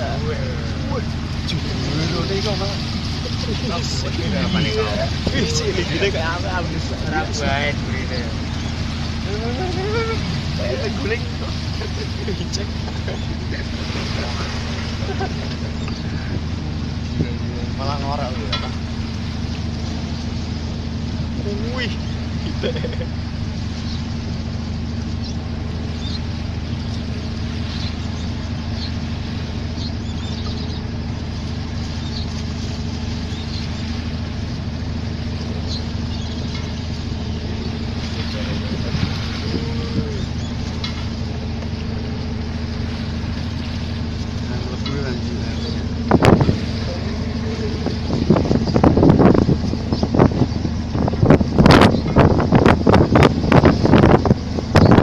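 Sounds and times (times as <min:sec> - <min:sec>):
boat engine drone: 0:00.0 - 0:55.0
wind gusts buffeting microphone: 0:34.1 - 0:55.0.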